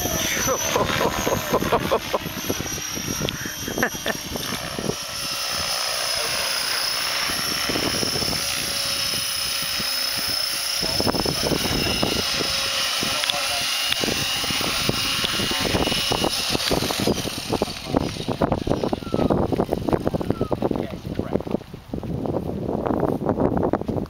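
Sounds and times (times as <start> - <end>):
rc helicopter motor whine: 0.0 - 24.0
wind buffeting microphone: 0.0 - 24.0.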